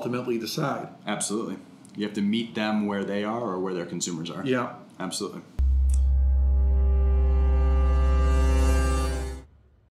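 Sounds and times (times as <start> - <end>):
held synthesized chord: 5.6 - 9.5
deep loud bass tone: 5.6 - 9.6.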